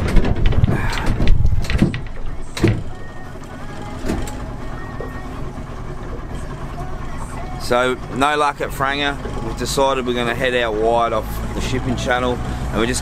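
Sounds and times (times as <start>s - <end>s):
motorboat engine and water: 0.0s - 13.0s.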